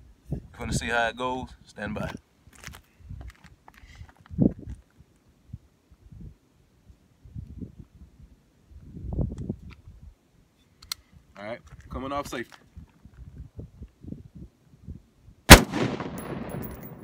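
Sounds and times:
pistol handling thumps and rustling: 15.5 - 17.0.

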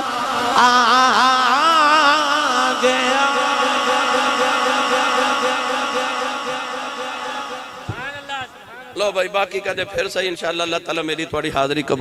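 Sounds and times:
man singing long note over loudspeaker: 0.0 - 9.0.

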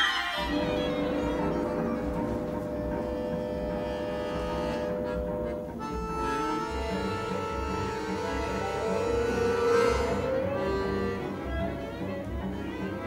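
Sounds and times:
orchestra playing long held notes: 0.0 - 13.0.

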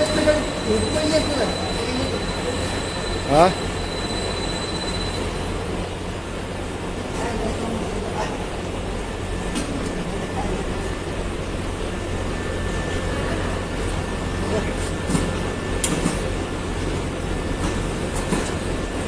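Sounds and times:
extrusion machine drone: 0.0 - 19.0.

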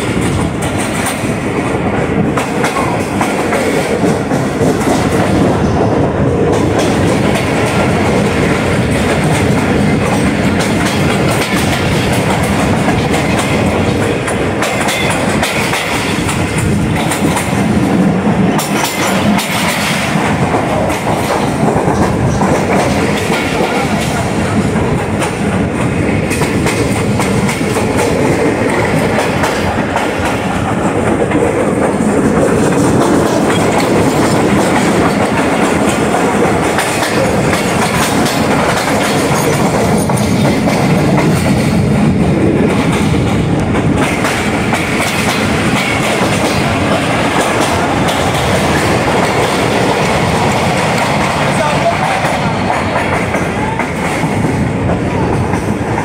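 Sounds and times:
train wheels rumbling on rail: 0.0 - 56.0
wheels clacking over rail joints: 0.0 - 56.0.

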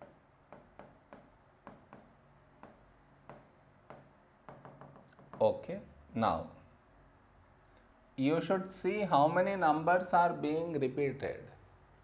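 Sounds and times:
stylus tapping on screen: 0.0 - 5.5.

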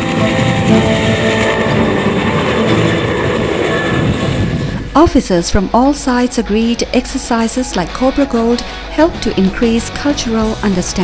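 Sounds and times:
helicopter flying low past: 0.0 - 6.1.

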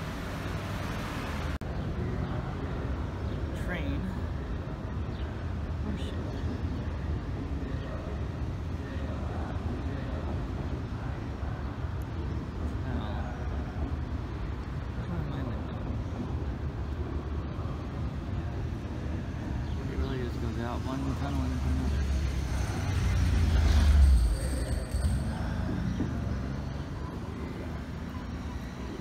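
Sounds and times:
city traffic rumble: 0.0 - 29.0
faint voices: 1.6 - 29.0.

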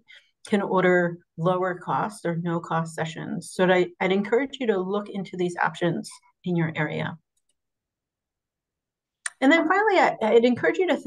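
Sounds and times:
woman speaking: 0.5 - 7.2, 9.3 - 11.0.

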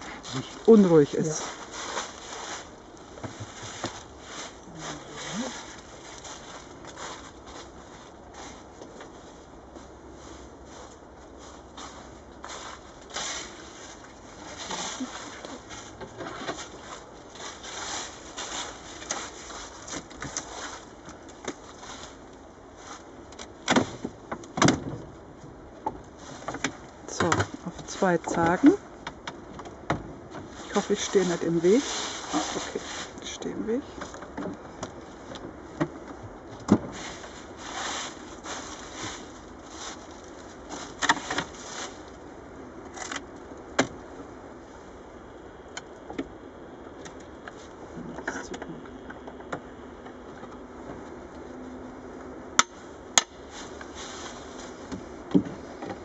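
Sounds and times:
crackling and scraping of handling: 0.0 - 56.0.

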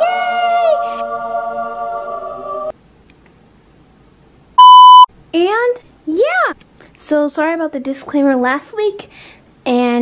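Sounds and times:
loud steady electronic beep: 4.6 - 5.1.

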